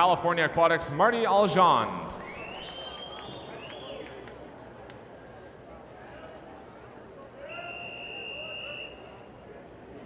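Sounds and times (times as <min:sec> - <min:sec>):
long whistle blast: 0:07.5 - 0:09.1.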